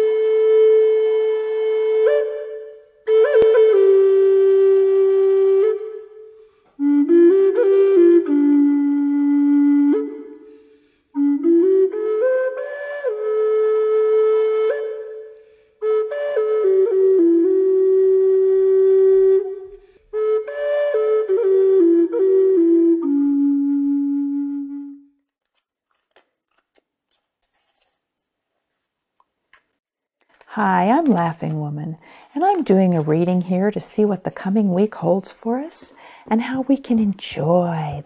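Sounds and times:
flute holding long note: 0.0 - 25.2.

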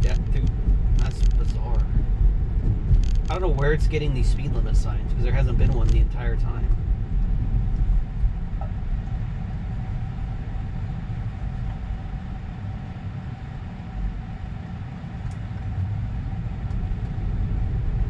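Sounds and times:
road and tyre noise in car cabin: 0.0 - 18.0.

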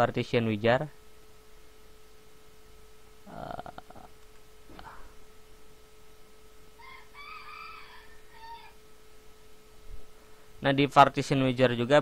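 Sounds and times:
faint electrical hum: 0.0 - 12.0
rooster crowing faintly: 6.7 - 8.9.

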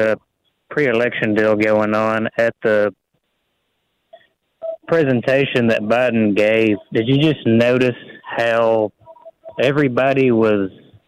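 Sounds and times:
short electronic beeps: 9.0 - 9.7.

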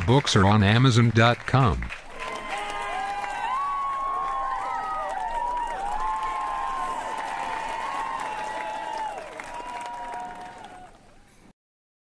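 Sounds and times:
audience applause: 0.0 - 11.2
crowd cheering: 0.0 - 11.3.

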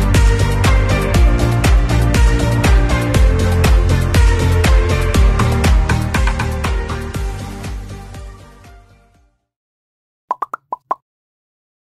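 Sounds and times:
background music: 0.0 - 9.5
bubbly pops logo sting: 10.3 - 11.0.

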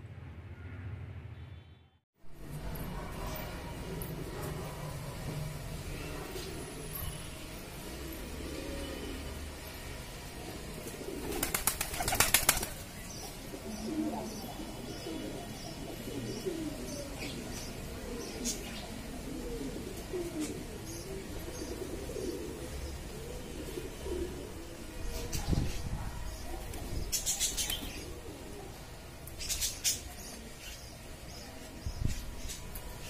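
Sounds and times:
pigeons cooing: 7.8 - 9.5, 10.5 - 12.7, 13.3 - 32.6.

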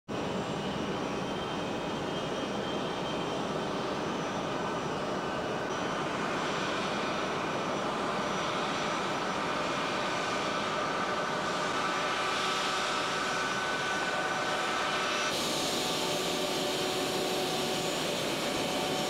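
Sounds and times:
plane engines taxiing: 0.2 - 19.0.

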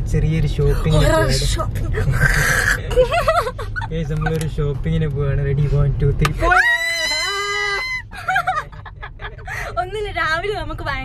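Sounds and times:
short broken cries: 6.4 - 8.2
long high-pitched cry: 6.5 - 8.1.

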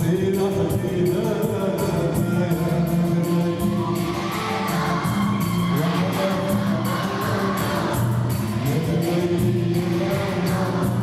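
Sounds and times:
instrumental accompaniment: 0.0 - 11.0
children's choir singing: 2.7 - 11.0.

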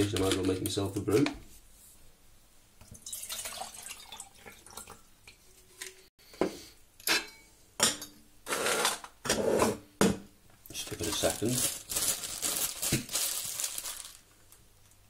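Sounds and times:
water pouring into metal pot: 3.0 - 5.0.

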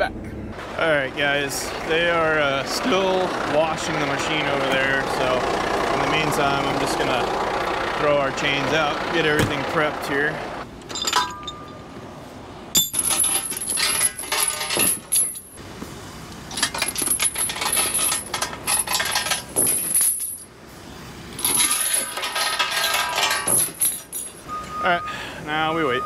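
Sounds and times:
chains clanking on wooden deck: 10.8 - 11.9, 12.7 - 15.6, 16.5 - 20.5, 21.4 - 24.5.

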